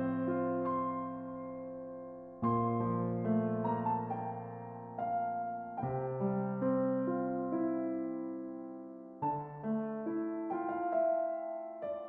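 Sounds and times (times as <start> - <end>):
calm piano music: 0.0 - 12.0.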